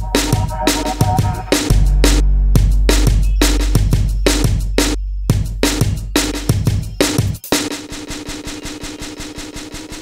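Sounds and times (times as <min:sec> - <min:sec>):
held low synth tone: 0:00.0 - 0:06.2
stuttering synth pulse: 0:00.0 - 0:06.5.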